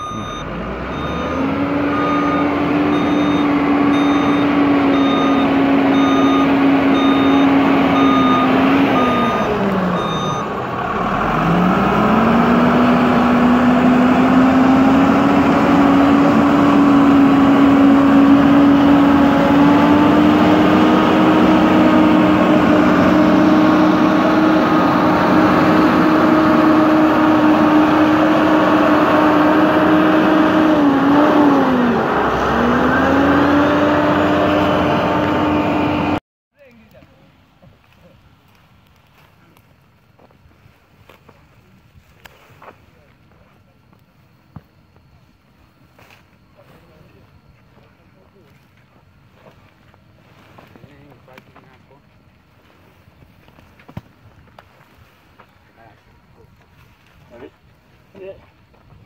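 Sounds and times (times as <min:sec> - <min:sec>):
reversing alarm beeping: 0:00.0 - 0:10.6
diesel engine humming: 0:00.0 - 0:37.6.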